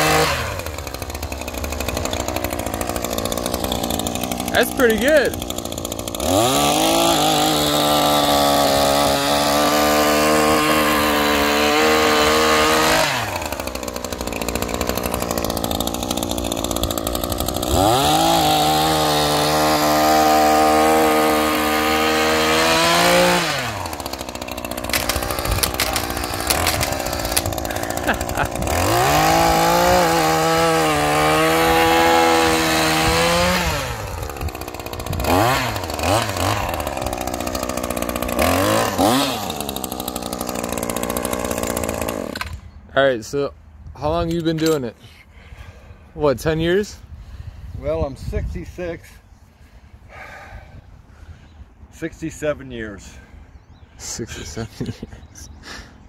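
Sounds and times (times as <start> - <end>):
two-stroke engine revving: 0.0 - 42.6.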